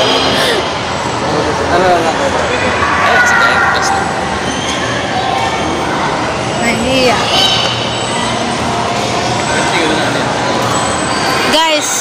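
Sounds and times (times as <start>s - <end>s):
indoor hall din: 0.0s - 6.3s
faint voices murmuring: 0.0s - 12.0s.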